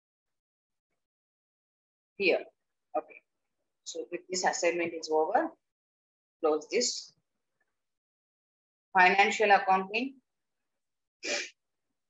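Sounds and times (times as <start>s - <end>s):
person breath burst: 11.2s - 11.5s.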